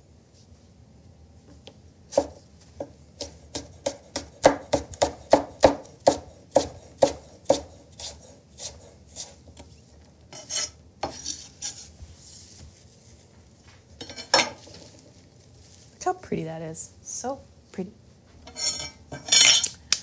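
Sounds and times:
knife chopping on wooden board: 0:02.1 - 0:09.0
knife scraping across board: 0:06.1 - 0:12.0, 0:18.5 - 0:19.8.

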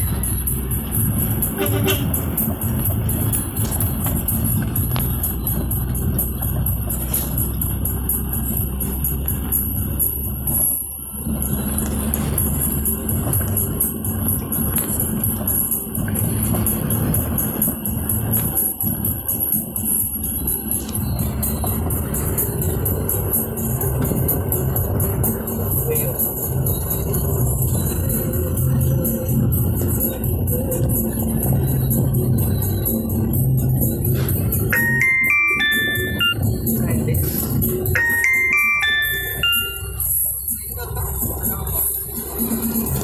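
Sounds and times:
music with steady beat: 0:00.0 - 0:10.7, 0:11.4 - 0:43.0
engine and road rumble: 0:00.0 - 0:43.0.

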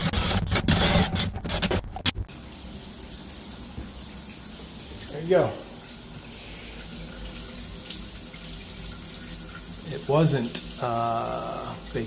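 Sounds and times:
water running into shower drain: 0:02.3 - 0:12.0.

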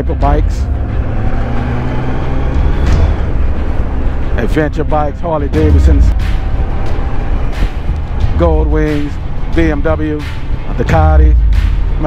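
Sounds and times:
motorcycle engine rumbling: 0:00.0 - 0:12.0
road noise: 0:00.0 - 0:12.0.

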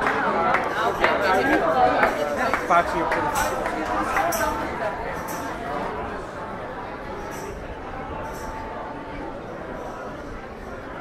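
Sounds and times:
passers-by talking: 0:00.0 - 0:11.0.

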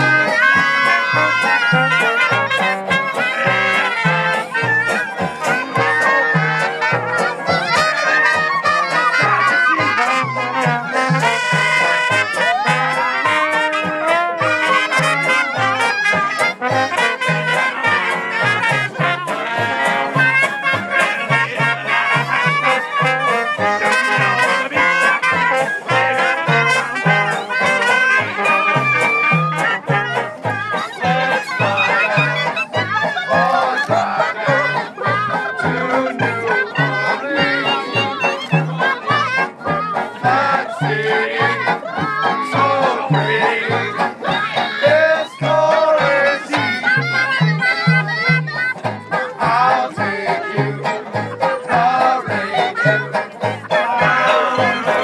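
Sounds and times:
banjo: 0:00.0 - 0:55.0
trombone: 0:00.0 - 0:55.0
trumpet: 0:00.0 - 0:55.0
washtub bass beat: 0:00.0 - 0:55.0.

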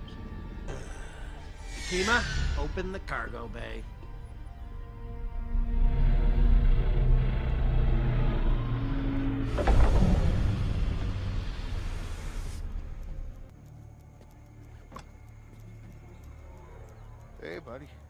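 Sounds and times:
spacecraft engine rumble: 0:01.1 - 0:13.5
loud rushing hiss: 0:01.6 - 0:02.9.

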